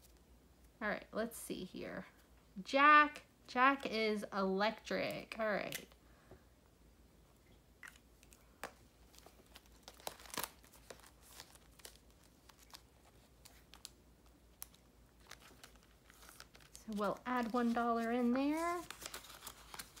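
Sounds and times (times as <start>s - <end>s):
plastic and paper rustling: 8.6s - 20.0s.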